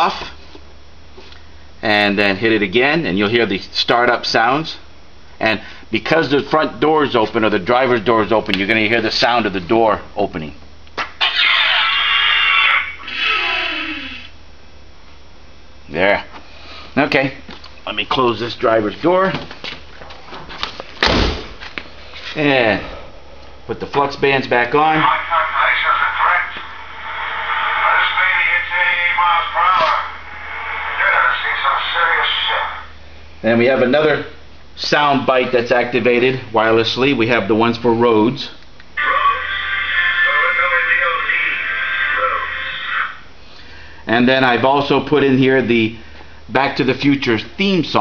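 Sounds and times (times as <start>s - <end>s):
recorded voices through speaker: 23.7s - 43.2s
hissing rush with falling tones: 30.1s - 32.2s.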